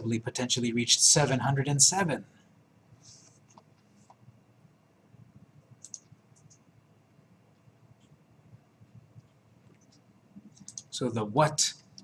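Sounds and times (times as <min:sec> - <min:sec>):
computer mouse clicks: 0:03.2 - 0:04.2, 0:05.8 - 0:06.7, 0:08.8 - 0:10.9.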